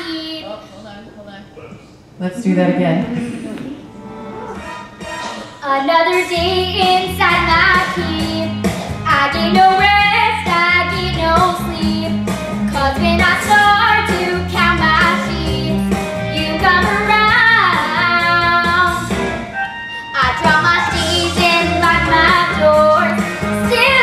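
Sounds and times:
instrumental accompaniment: 3.8 - 24.0
girl singing into microphone: 5.6 - 19.0, 20.1 - 24.0.

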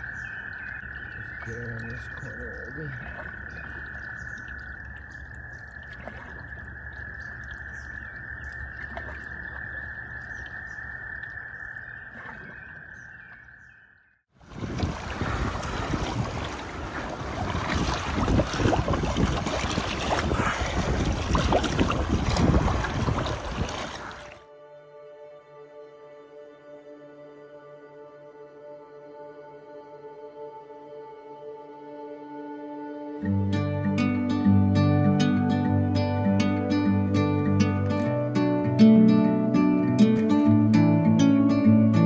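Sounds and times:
frogs calling in chorus: 0.0 - 14.0, 17.5 - 24.4.

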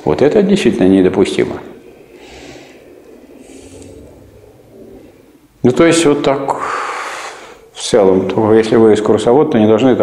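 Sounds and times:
person breathing through nose: 2.1 - 4.4, 6.6 - 7.7.

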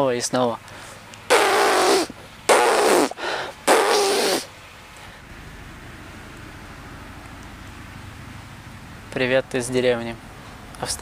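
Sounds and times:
low steady hiss: 0.0 - 11.0
buzzing lips air blasts: 1.3 - 4.5.

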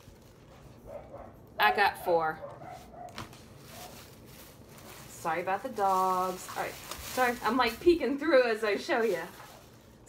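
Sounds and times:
plastic bag rustling: 0.0 - 1.4, 2.4 - 10.0.

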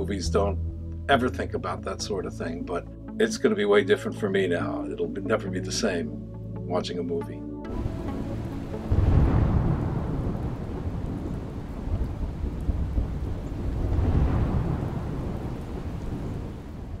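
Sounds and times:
rain: 7.7 - 17.0
thunder rumbling: 7.7 - 17.0.

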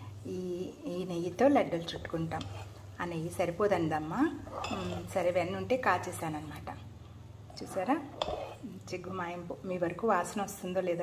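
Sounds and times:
spoon scraping steel vessel: 1.9 - 2.8, 4.3 - 5.4, 7.5 - 8.8.

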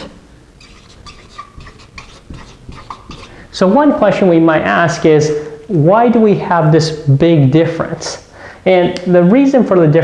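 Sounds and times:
marker squeaking on whiteboard: 0.0 - 3.5.

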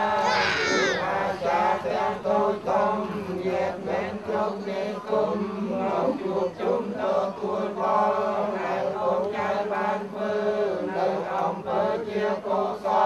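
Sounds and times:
congregation chanting in unison: 0.0 - 13.0.

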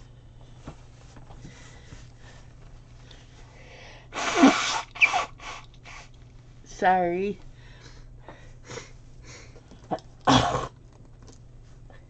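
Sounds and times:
woman blowing her nose: 4.1 - 6.1.

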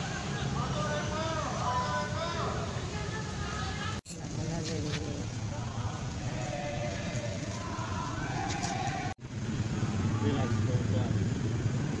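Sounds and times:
low traffic rumble: 0.0 - 12.0
people talking: 0.2 - 8.8.

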